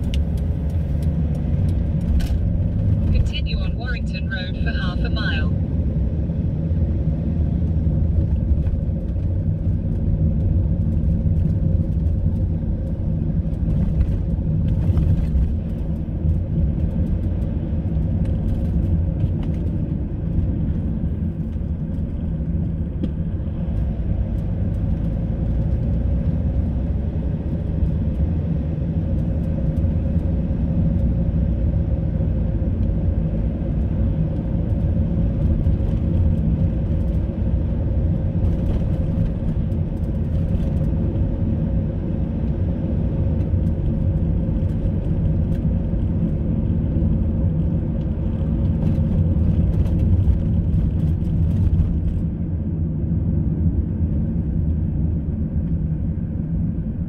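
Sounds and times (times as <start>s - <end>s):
car engine and tyre rumble: 0.0s - 57.0s.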